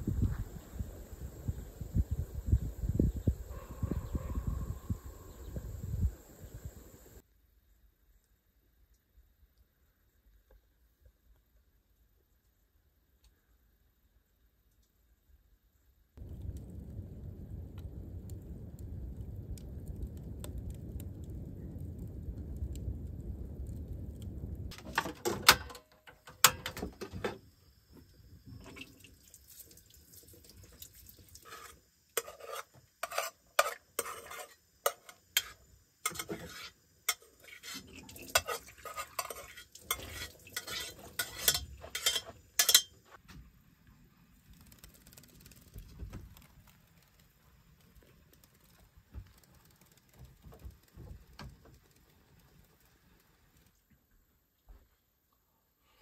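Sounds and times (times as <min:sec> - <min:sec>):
wood fire rumbling: 0:16.2 - 0:25.7, 0:33.7 - 0:42.8, 0:43.5 - 0:54.0
food sizzling: 0:28.4 - 0:43.0
utensil scraping a frying pan: 0:31.4 - 0:43.0.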